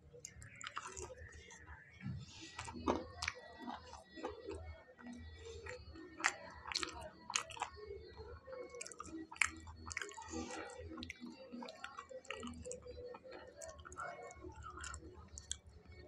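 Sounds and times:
man chewing crunchy food: 0:00.2 - 0:01.6, 0:02.4 - 0:07.8, 0:08.7 - 0:15.6.

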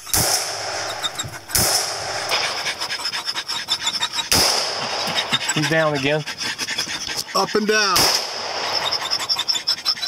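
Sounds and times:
rifle shots: 0:00.0 - 0:02.6, 0:04.3 - 0:05.2, 0:08.0 - 0:08.8
rapid high chirping: 0:00.0 - 0:07.8, 0:08.5 - 0:10.0.

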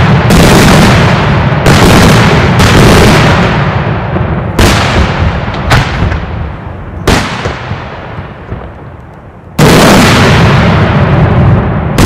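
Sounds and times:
fireworks bursting: 0:00.0 - 0:12.0.

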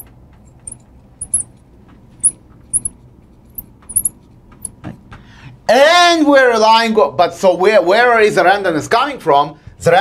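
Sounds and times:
marker squeaking on glass: 0:00.6 - 0:01.5, 0:02.2 - 0:04.8.

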